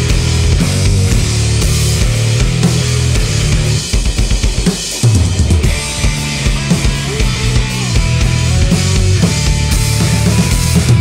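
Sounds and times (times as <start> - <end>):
drum kit: 0.0 - 11.0
rock band playing: 0.0 - 11.0.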